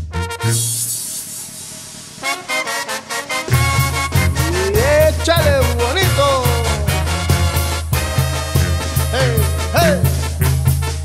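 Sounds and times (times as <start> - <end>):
brass band music: 0.0 - 11.0
cymbal crash: 0.6 - 5.3.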